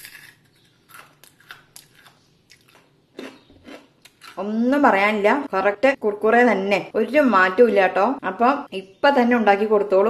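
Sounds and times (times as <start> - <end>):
crispy snack crunching: 0.0 - 4.4.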